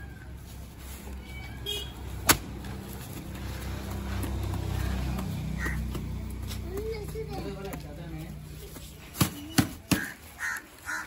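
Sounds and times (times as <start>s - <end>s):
sharp crack: 2.2s - 2.6s.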